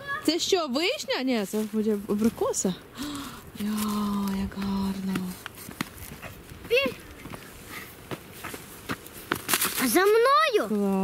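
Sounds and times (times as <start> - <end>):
footsteps on sandy stony path: 0.4 - 2.8, 3.6 - 10.6.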